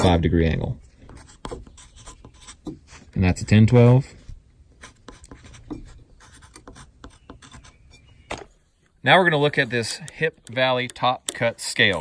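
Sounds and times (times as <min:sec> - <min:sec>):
pencil scratching on wood: 0:01.1 - 0:02.8, 0:04.8 - 0:07.8.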